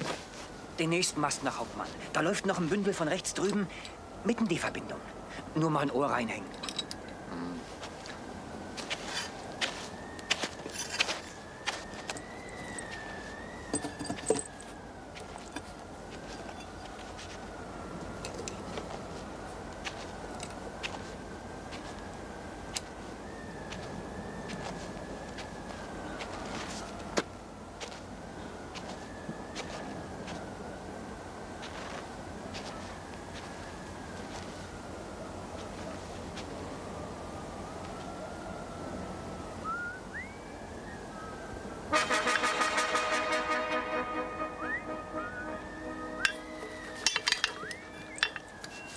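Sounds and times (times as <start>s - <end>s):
metal climbing gear clinking: 6.4s - 7.3s, 8.9s - 9.4s, 10.6s - 13.0s, 13.6s - 17.3s, 18.2s - 19.0s, 19.9s - 21.0s, 46.2s - 48.9s
thin high whistle: 39.6s - 41.4s, 44.2s - 48.9s.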